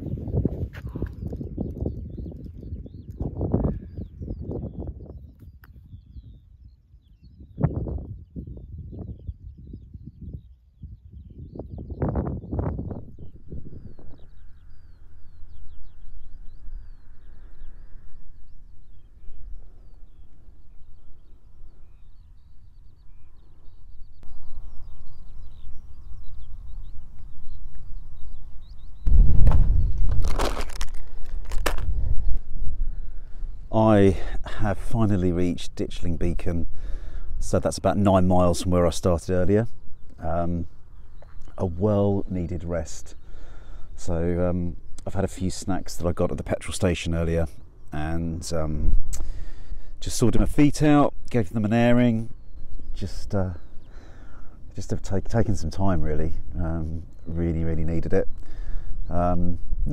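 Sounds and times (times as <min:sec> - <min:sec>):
faint bird chirps: 0:00.0 - 0:31.2, 0:31.8 - 0:59.9
wind buffeting microphone: 0:00.0 - 0:59.9.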